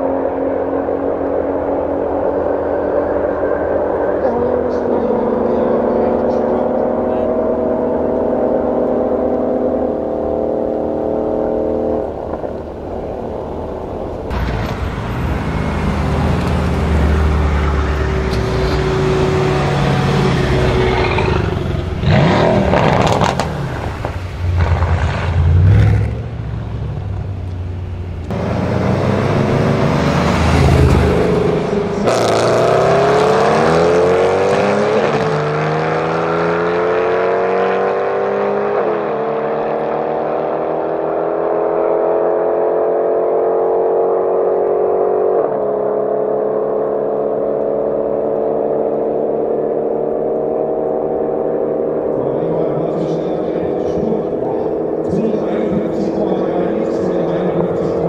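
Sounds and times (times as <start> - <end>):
car accelerating with upshifts: 0.0 - 58.0
car engines revving at full throttle: 0.0 - 58.0.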